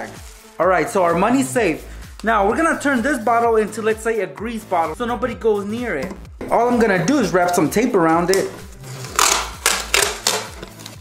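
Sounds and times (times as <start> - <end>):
masking tape pulled off roll: 8.3 - 11.0.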